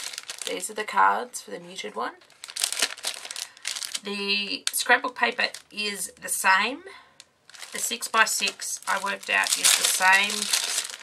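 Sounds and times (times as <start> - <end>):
plastic packaging crinkling: 0.0 - 0.8, 2.2 - 5.8, 7.5 - 11.0.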